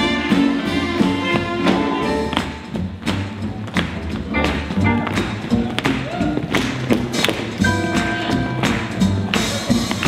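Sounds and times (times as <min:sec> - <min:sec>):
swing band playing: 0:00.0 - 0:10.0
walking upright bass: 0:00.0 - 0:10.0.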